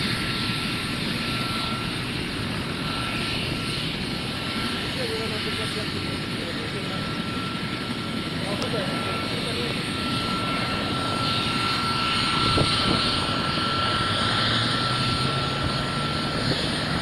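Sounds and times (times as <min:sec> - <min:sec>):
helicopters droning: 0:00.0 - 0:17.0.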